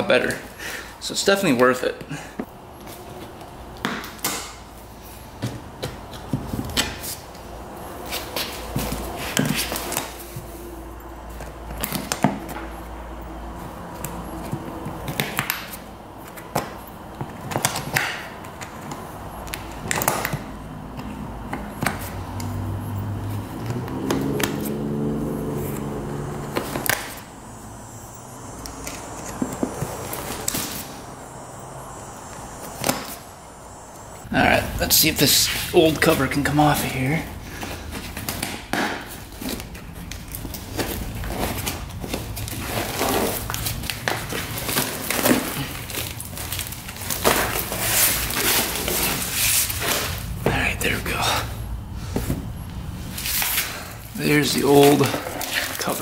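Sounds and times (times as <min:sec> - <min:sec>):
low hum: 0:07.4 - 0:15.1, 0:20.5 - 0:36.5.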